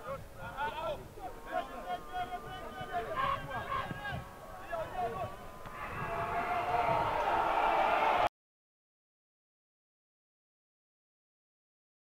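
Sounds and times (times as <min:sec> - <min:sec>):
crowd noise: 0:00.0 - 0:08.3
stadium crowd shouting: 0:00.7 - 0:08.3.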